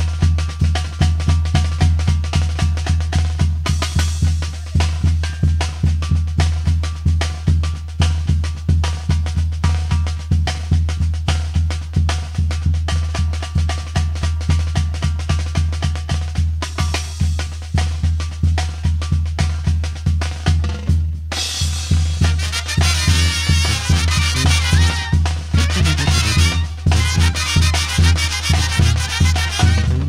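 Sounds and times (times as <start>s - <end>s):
bass drum beat: 0.0s - 30.0s
snare drums: 0.0s - 30.0s
brass horns playing: 22.2s - 30.0s
low bass line: 25.5s - 27.1s, 29.7s - 30.0s.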